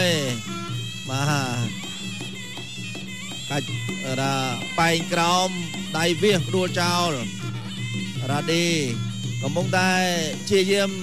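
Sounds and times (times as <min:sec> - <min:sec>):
drums: 0:00.0 - 0:11.0
reed pipe wailing melody: 0:00.0 - 0:11.0.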